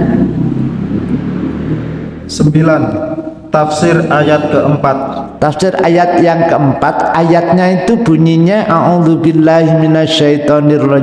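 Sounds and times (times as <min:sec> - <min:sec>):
low engine rumble: 0:00.0 - 0:05.5.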